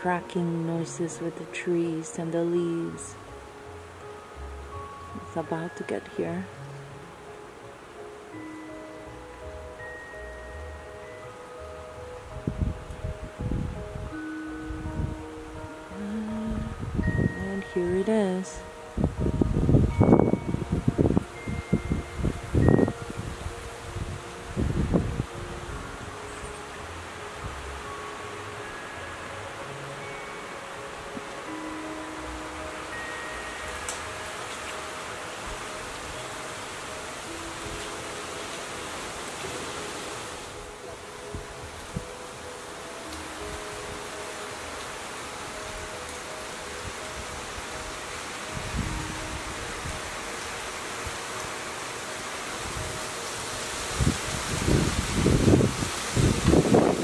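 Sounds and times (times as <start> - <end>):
wind rushing through leaves: 0.0 - 57.0
wind gusts buffeting microphone: 12.2 - 15.8, 16.4 - 28.0, 46.9 - 51.2, 52.4 - 57.0.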